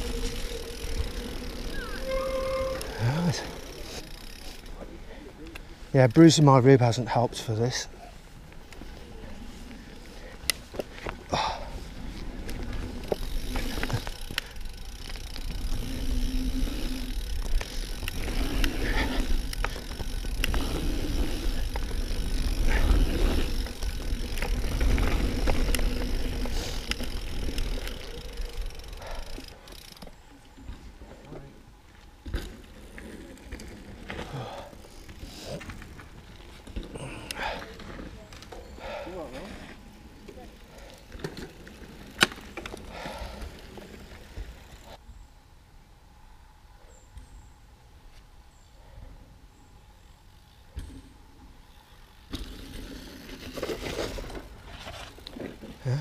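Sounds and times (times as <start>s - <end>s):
bike clicks: 0.0s - 4.8s, 9.6s - 31.4s, 40.2s - 45.0s
bike tyres rumbling on dirt: 0.0s - 5.2s, 7.6s - 45.0s, 51.6s - 56.0s
bike rattles and knocks: 12.1s - 31.5s, 52.3s - 56.0s.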